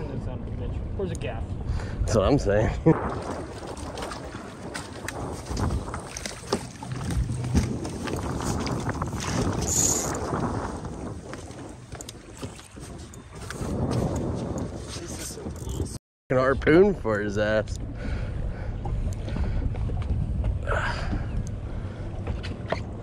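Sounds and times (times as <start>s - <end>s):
wind on microphone: 0.0s - 17.0s, 17.6s - 23.0s
water washing against boat hull: 2.9s - 15.6s.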